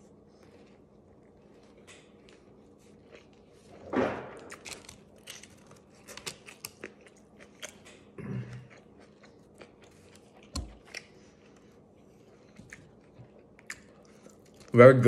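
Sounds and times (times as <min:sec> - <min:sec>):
close-up chewing: 0:00.0 - 0:14.8.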